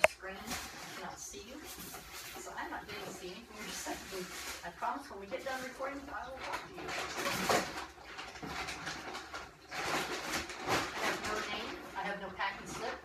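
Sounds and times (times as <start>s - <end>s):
plastic packing rustling: 0.0s - 13.0s.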